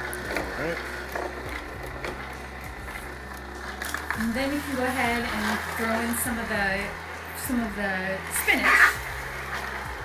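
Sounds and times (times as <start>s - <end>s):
juicer motor humming: 0.0s - 10.0s.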